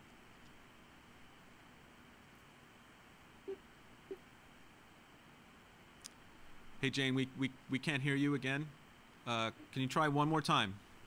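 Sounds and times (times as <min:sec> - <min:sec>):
phone line hiss: 0:03.4 - 0:04.2
short tone blips: 0:03.5 - 0:04.2.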